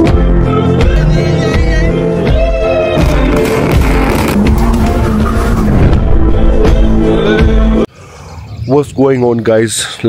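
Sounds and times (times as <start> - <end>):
loud background music: 0.0 - 7.9.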